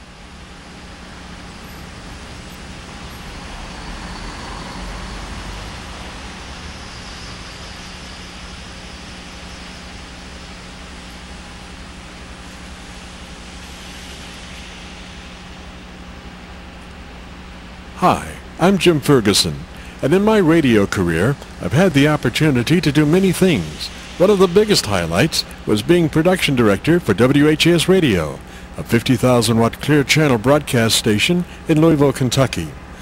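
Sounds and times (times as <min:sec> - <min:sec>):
low hum: 0:00.0 - 0:32.0
passing cars and trucks: 0:01.8 - 0:09.5.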